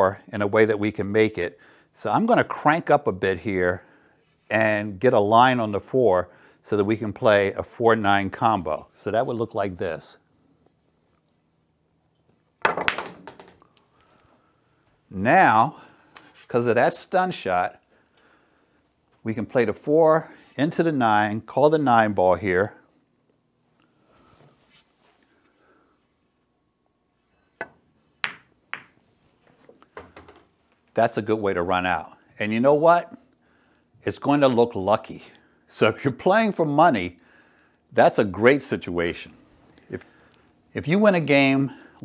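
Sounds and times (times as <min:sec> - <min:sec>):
cue tip striking ball: 0:12.6 - 0:13.6, 0:27.6 - 0:29.0
ball rattling into pocket: 0:12.6 - 0:13.7
pool balls clicking: 0:12.6 - 0:13.8, 0:27.6 - 0:29.0, 0:29.6 - 0:30.6.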